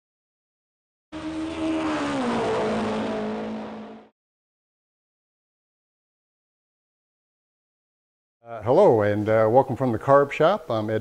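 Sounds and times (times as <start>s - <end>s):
car engine: 1.1s - 4.1s.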